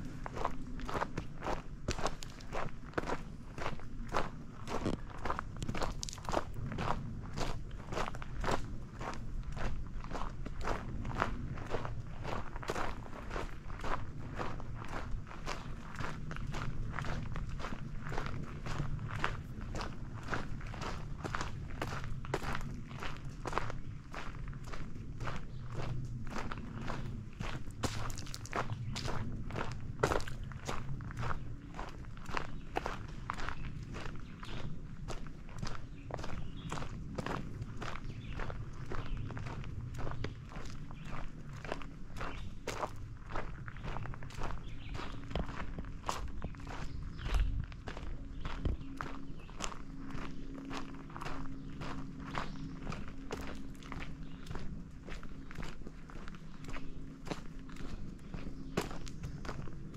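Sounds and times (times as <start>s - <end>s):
footsteps on dirt trail: 0.0s - 59.9s.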